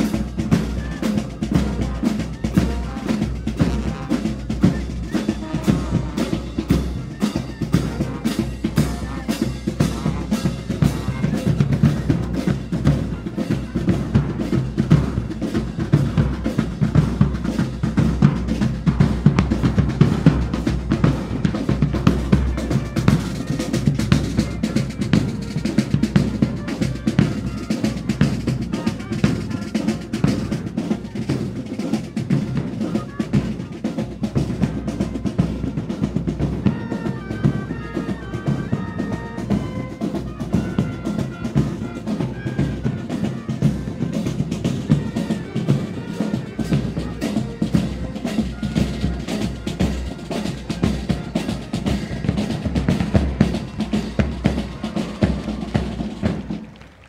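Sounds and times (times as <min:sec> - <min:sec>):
snare and bass drums cadence: 0:00.0 - 0:57.0.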